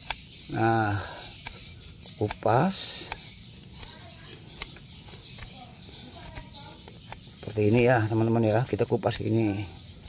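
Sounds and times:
knife light clicks: 0.0s - 0.3s
knife scraping bark: 0.0s - 10.0s.

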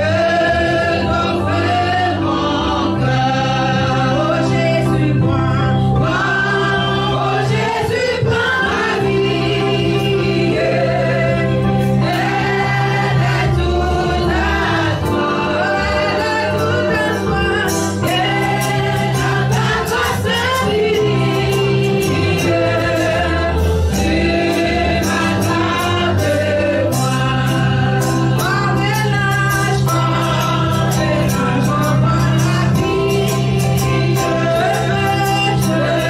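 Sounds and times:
bass: 0.0s - 36.0s
gospel group singing: 0.0s - 36.0s
drums: 11.8s - 36.0s.

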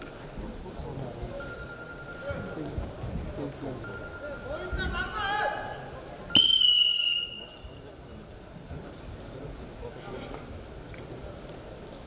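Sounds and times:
referee's whistle blast: 6.3s - 7.6s.

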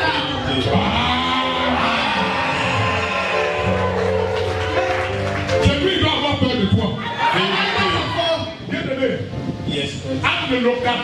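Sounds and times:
church band worship music: 0.0s - 11.0s.

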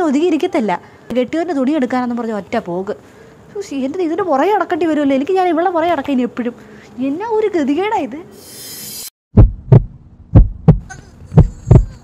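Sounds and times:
heartbeat thumps: 9.3s - 12.0s.

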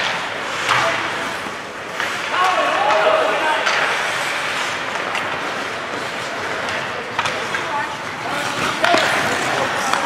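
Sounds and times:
reverberant hubbub of voices: 0.0s - 10.0s
skates scraping on ice: 0.0s - 10.0s.

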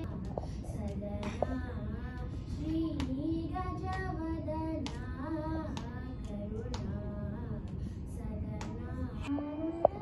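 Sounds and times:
girl singing into microphone: 0.0s - 10.0s.

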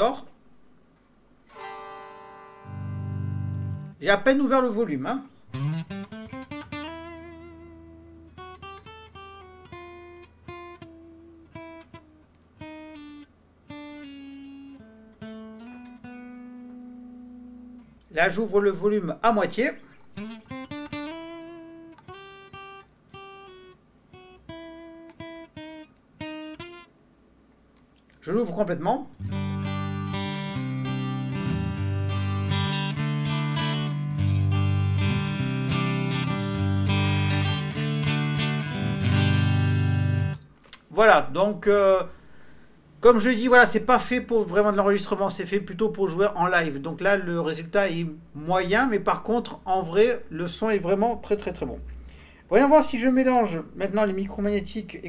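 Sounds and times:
electric guitar picked notes: 1.5s - 4.0s, 5.5s - 18.0s, 20.2s - 26.9s, 29.2s - 40.5s
faint electric guitar notes: 1.5s - 4.0s, 29.2s - 40.5s.

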